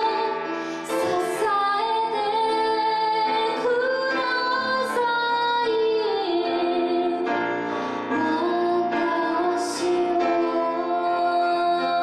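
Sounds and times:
grand piano accompaniment: 0.0 - 12.0
woman singing: 0.0 - 12.0
singer breaths: 0.5 - 1.0, 7.6 - 8.1.

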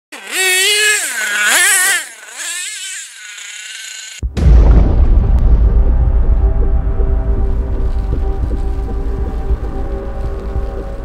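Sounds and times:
small nitro engine revving: 0.1 - 4.2.

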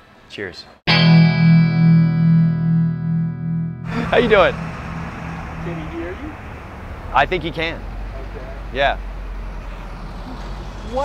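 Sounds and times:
road traffic rumble: 3.8 - 11.0
vehicle passing: 3.8 - 11.0.

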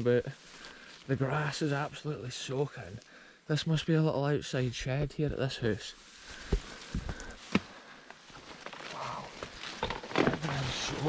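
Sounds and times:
footsteps through wet grass: 0.2 - 3.2, 4.8 - 9.8.

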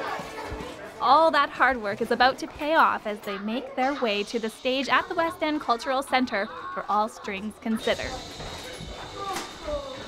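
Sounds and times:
faint chatter of children and adults: 0.0 - 10.0.

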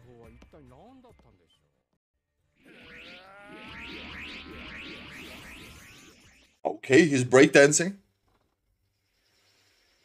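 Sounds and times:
soundtrack with held tones: 2.6 - 6.0.

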